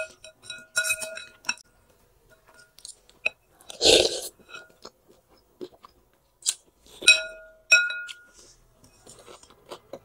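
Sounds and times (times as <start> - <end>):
cutlery clinking on glass bowl: 0.0 - 1.7, 4.4 - 4.9, 7.0 - 9.2.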